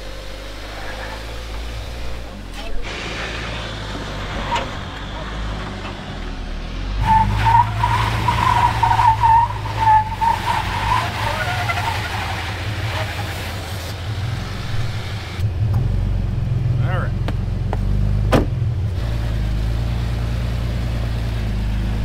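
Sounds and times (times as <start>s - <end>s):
car engine running under load: 0.0s - 22.0s
tyre squeal on rock: 7.1s - 13.6s.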